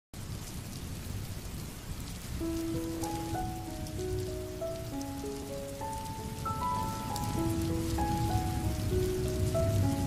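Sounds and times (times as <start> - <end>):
steady rain: 0.2 - 10.0.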